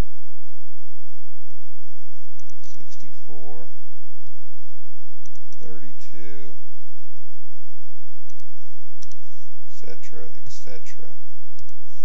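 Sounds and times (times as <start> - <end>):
person speaking: 2.5 - 3.9, 5.5 - 6.6, 9.7 - 11.3.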